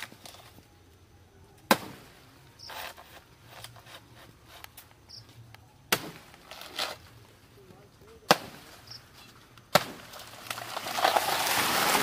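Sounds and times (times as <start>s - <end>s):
chopping blows into plant trunk: 5.9s - 6.4s, 9.7s - 10.2s
plant tearing and falling: 9.6s - 12.0s.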